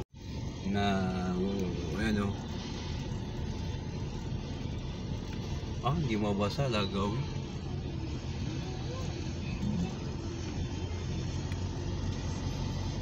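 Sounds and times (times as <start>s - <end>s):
car road and engine noise: 0.0s - 13.0s
faint voices: 7.1s - 12.9s.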